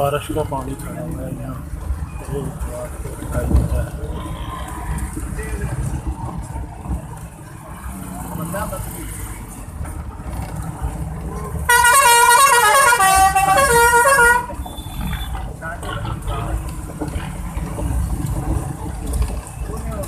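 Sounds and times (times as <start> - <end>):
low rumble of traffic: 0.0 - 20.0
bus musical horn tune: 11.7 - 14.6.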